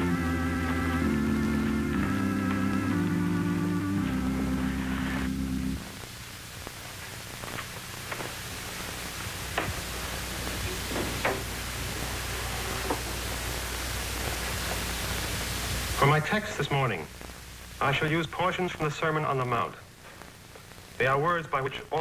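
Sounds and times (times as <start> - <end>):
held chord of score music: 0.0 - 5.9
television soundtrack hiss: 0.0 - 22.0.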